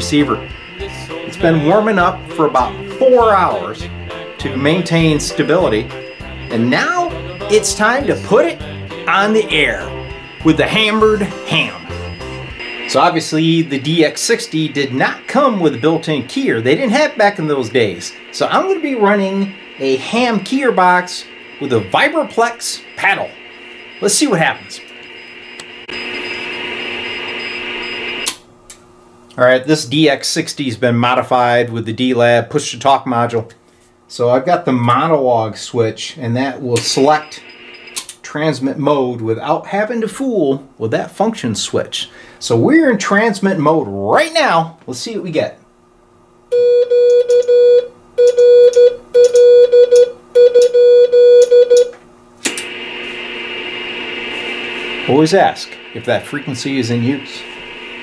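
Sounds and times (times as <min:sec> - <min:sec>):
faint high tone keying: 0:00.0 - 0:16.8
morse code beeps: 0:00.0 - 0:20.4, 0:21.4 - 0:28.3, 0:46.5 - 0:51.9
shortwave receiver hiss and static: 0:00.0 - 0:28.4, 0:36.2 - 0:38.2, 0:51.9 - 0:58.0
radio click: 0:36.7 - 0:37.2, 0:52.4 - 0:53.2.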